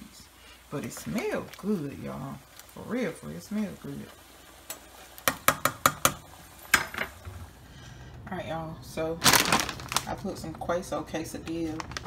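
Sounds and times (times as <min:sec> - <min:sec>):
spoon knocking cooking pot: 0:04.7 - 0:07.1.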